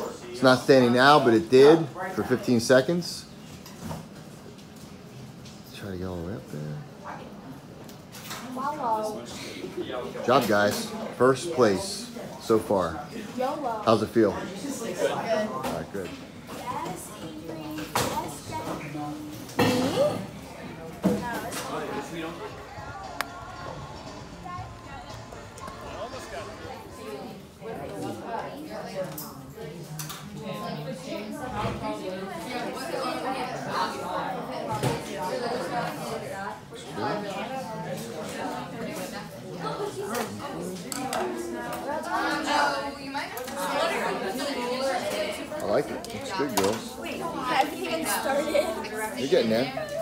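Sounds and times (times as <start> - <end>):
indistinct chatter of voices: 0.0 - 50.0.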